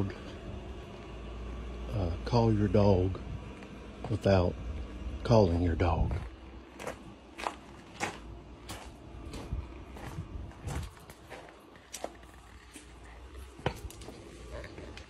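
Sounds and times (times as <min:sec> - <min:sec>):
footsteps on gravel: 0:06.1 - 0:15.0.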